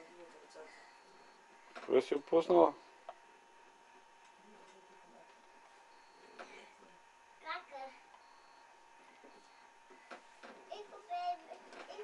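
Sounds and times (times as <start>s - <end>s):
steady thin hum: 0.0s - 12.0s
faint high beeps: 5.9s - 6.7s, 8.2s - 9.7s.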